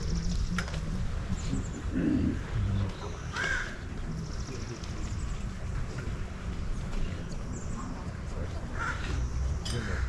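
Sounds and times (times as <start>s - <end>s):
faint distant voices: 0.0s - 10.0s
crow caw: 3.3s - 3.8s, 8.8s - 9.2s, 9.8s - 10.0s.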